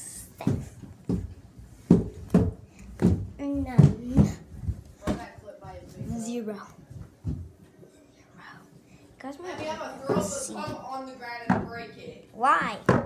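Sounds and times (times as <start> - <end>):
sharp knocks and bumps: 0.4 - 6.3.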